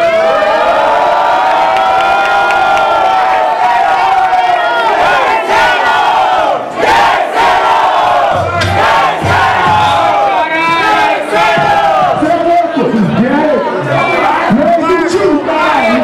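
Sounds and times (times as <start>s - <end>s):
crowd shouting and cheering: 0.0s - 16.0s.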